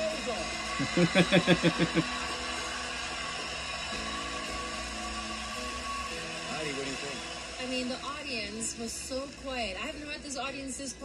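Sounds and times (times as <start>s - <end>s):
audience applauding and cheering: 0.0s - 10.3s
background music: 0.0s - 11.0s.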